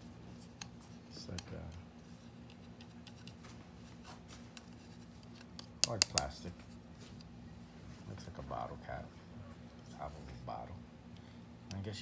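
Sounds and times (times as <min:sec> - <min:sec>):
hands rubbing and clicking metal: 0:00.0 - 0:03.5, 0:04.2 - 0:07.3
faint steady hum: 0:00.0 - 0:12.0.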